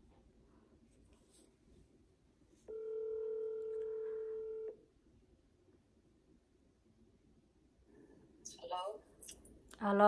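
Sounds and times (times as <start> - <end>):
telephone ringback tone: 2.7 - 4.8.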